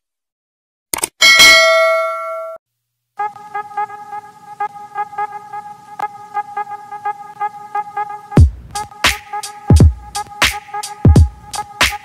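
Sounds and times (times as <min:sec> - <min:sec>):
notification bell ding: 0:01.2 - 0:02.6.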